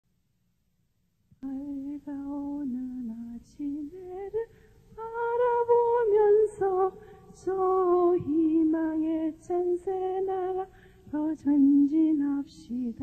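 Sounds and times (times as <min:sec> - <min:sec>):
woman singing slow melody: 0:01.4 - 0:13.0.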